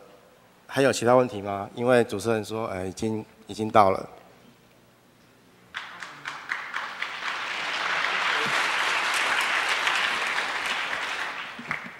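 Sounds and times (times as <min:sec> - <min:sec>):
audience applauding: 0:05.7 - 0:11.9.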